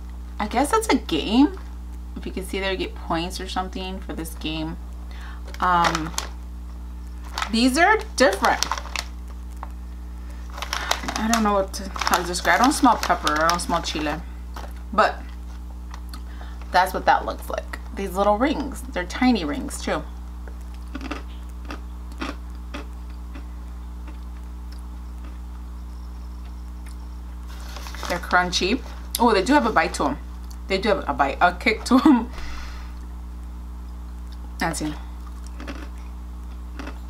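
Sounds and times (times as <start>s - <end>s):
low room hum: 0.0s - 37.0s
crunching potato snacks: 5.4s - 6.4s, 7.0s - 16.7s, 20.4s - 29.6s, 35.2s - 37.0s
chewing: 20.4s - 25.6s, 35.2s - 37.0s.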